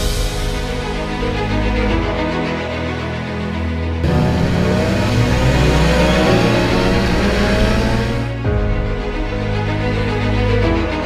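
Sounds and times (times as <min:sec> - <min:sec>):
motorcycle engine accelerating: 0:04.0 - 0:08.4.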